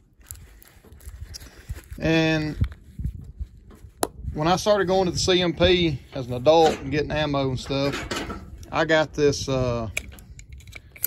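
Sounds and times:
soft rustling of packaging: 0.0 - 6.6.

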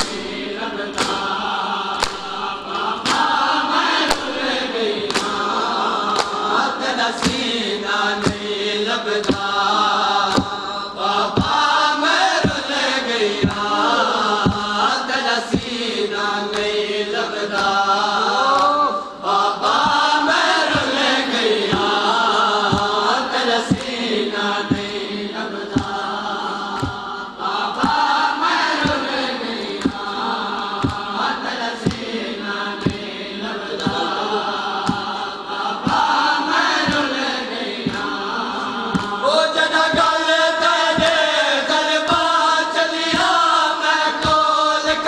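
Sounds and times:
hands striking chests: 0.0 - 1.4, 2.0 - 3.4, 4.1 - 5.5
men chanting: 0.0 - 45.0.

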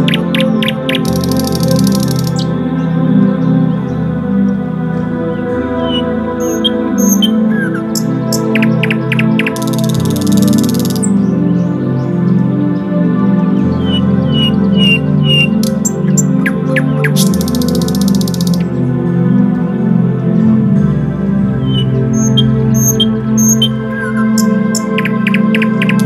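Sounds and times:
buzzy bird trill: 0.0 - 2.5, 5.8 - 11.3, 13.8 - 18.7, 21.6 - 26.0
birds chirping: 0.0 - 26.0
soft ambient music: 0.0 - 26.0.

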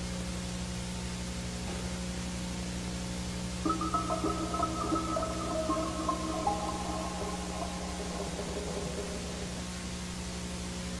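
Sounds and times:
long-held music notes: 3.7 - 10.1.

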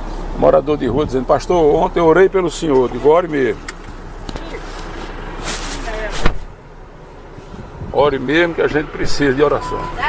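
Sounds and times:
brief rustle: 3.7 - 6.5.

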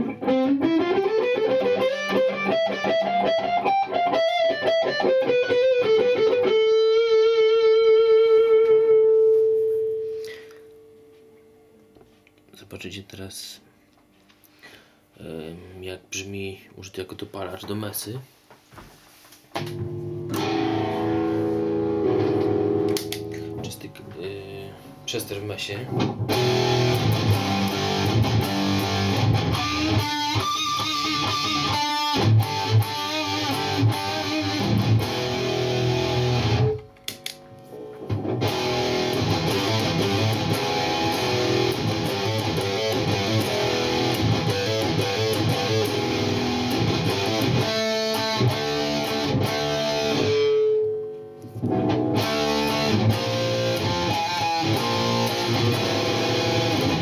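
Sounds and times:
distorted electric guitar riffs: 0.0 - 11.3, 19.6 - 25.1, 25.8 - 57.0.

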